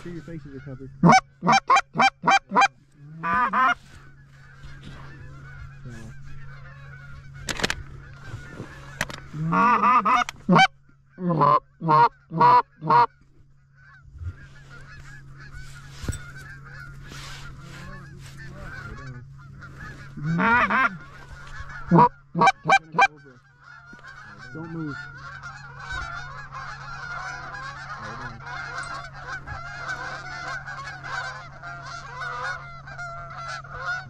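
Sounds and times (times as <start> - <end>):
distant flock of geese honking: 0.0 - 34.0
goose call honks and clucks: 0.0 - 34.0.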